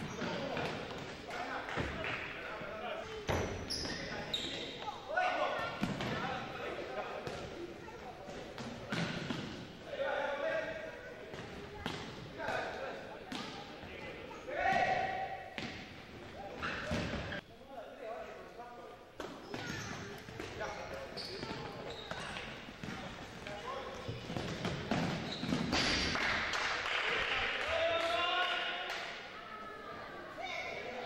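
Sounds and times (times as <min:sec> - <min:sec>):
high calls or sneakers squeaking: 0:03.3 - 0:05.0, 0:19.4 - 0:22.7, 0:25.0 - 0:25.8.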